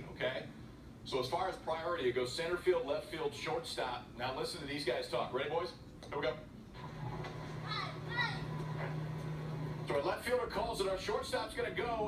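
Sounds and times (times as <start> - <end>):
steady low hum: 0.0 - 12.0
young players shouting calls: 7.7 - 8.6.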